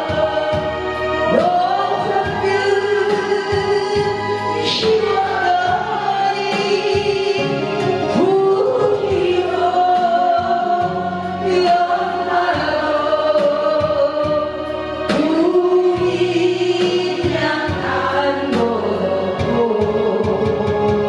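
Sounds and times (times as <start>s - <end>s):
karaoke backing track: 0.0s - 21.0s
woman singing into microphone: 0.0s - 21.0s.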